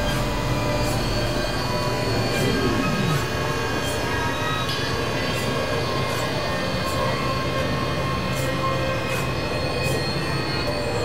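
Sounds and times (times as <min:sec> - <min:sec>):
synthesizer drones: 0:00.0 - 0:05.6
falling synth glide: 0:02.1 - 0:03.6.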